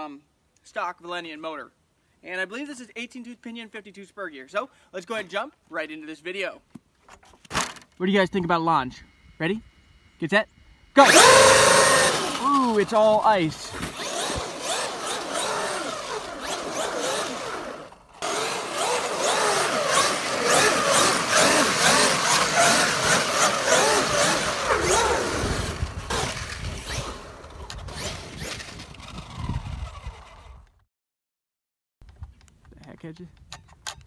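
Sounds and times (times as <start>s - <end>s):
electric motor whining: 11.0s - 30.7s.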